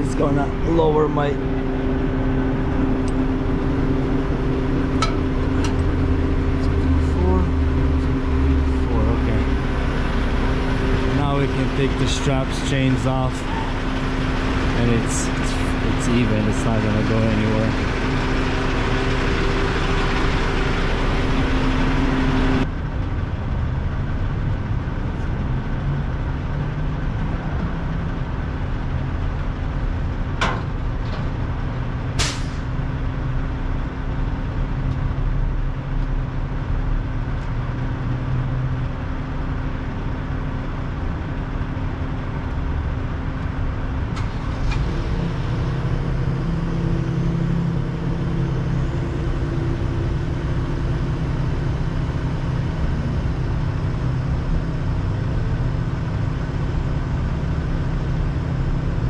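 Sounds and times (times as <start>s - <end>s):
truck engine idling: 0.0s - 59.0s.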